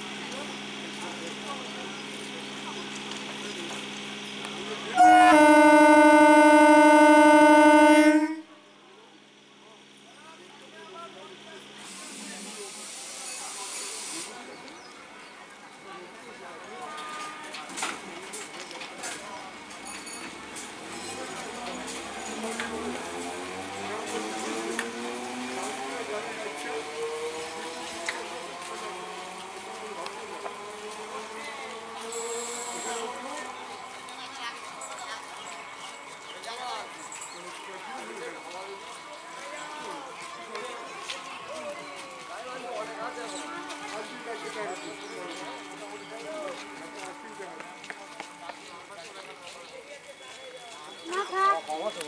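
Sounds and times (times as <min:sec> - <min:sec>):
electric train motors whining: 0:02.2 - 0:08.4
train horn: 0:05.0 - 0:08.5, 0:42.8 - 0:48.8.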